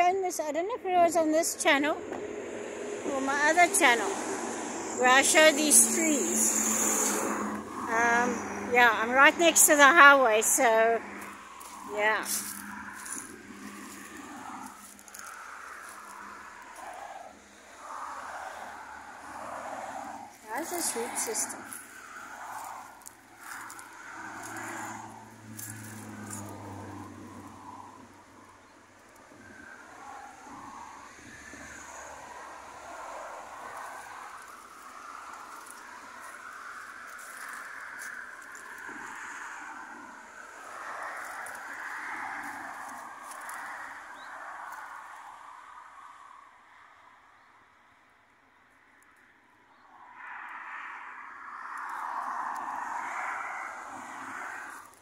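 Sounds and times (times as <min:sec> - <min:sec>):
highway traffic passing: 0:00.0 - 0:55.0.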